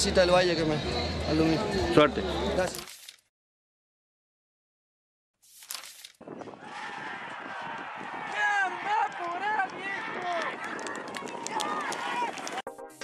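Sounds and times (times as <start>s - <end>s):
crowd shouting and yelling: 6.3s - 12.6s.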